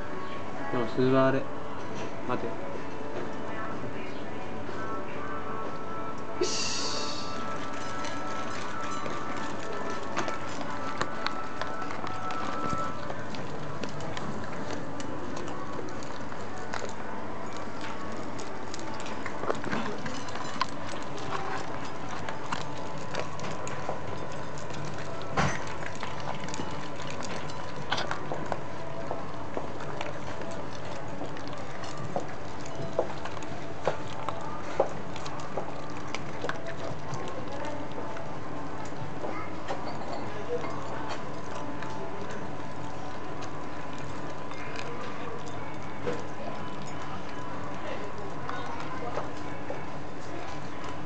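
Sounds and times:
kibble clinking in metal bowls: 6.8 - 38.2, 39.6 - 49.5.

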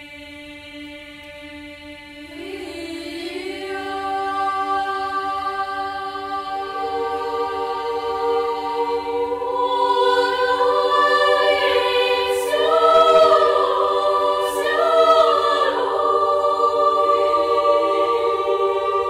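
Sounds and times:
girls' choir singing a cappella: 0.0 - 19.0.

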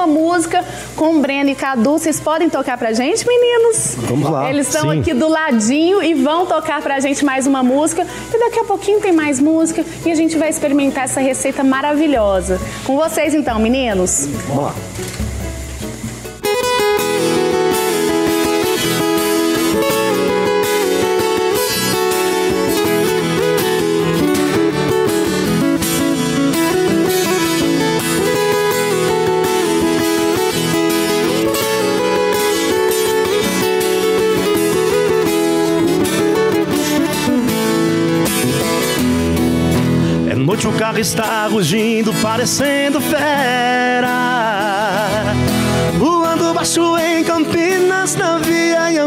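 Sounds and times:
acoustic guitar playing: 0.0 - 49.0.

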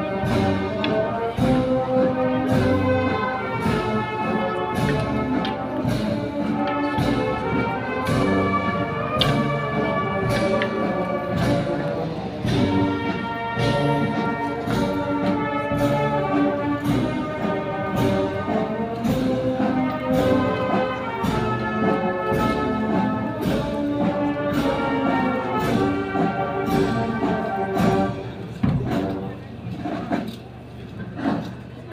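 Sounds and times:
drum beat: 0.0 - 29.4
brass band playing march: 0.0 - 30.3, 31.2 - 31.9.

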